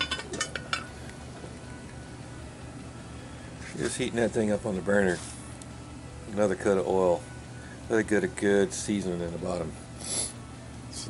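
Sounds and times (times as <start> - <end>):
metal lid clinking: 0.0 - 0.9
gas burner humming: 0.0 - 11.0.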